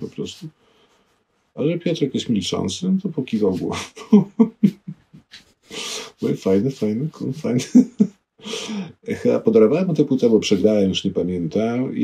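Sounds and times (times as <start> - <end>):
short laugh or sharp breath: 8.4 - 9.0.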